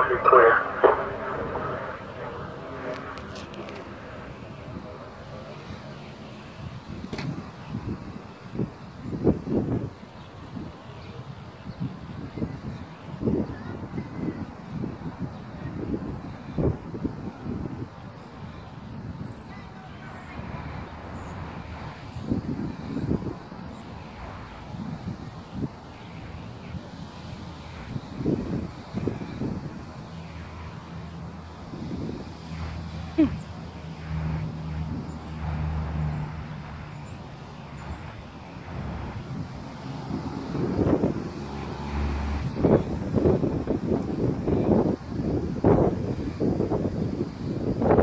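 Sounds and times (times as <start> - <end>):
low outdoor rumble: 0.0 - 8.4
low engine hum: 0.0 - 48.0
wind buffeting microphone: 0.0 - 48.0.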